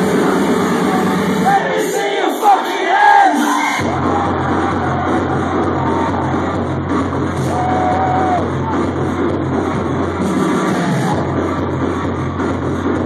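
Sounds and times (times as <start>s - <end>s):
electronic dance music: 0.0s - 13.0s
crowd whooping and cheering: 1.4s - 11.5s.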